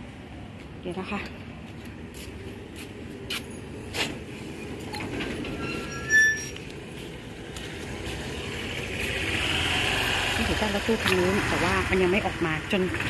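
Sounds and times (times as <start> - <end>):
low outdoor rumble: 0.0 - 13.0
high-pitched squeak: 4.9 - 6.7.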